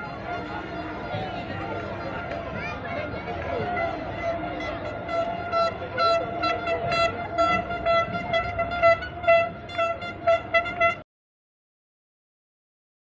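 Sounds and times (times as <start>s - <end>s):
street noise: 0.0s - 11.0s
horn blasts: 3.1s - 11.0s.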